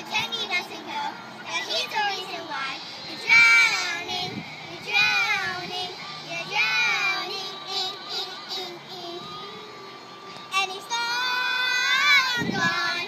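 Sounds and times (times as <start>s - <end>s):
young girls singing: 3.1s - 13.0s.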